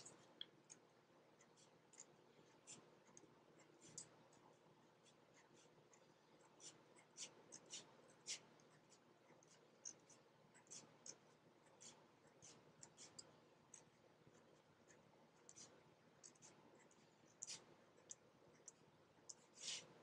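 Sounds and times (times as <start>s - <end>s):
pen strokes on cardboard: 1.4s - 18.7s, 19.3s - 20.0s.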